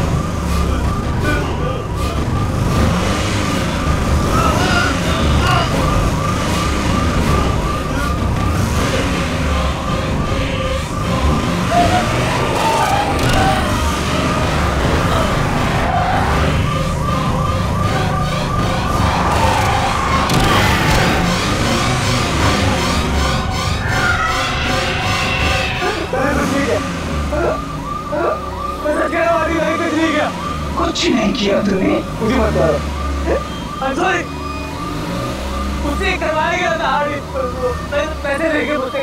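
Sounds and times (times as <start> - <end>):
background music: 0.0 - 39.0
car engine revving: 0.0 - 39.0.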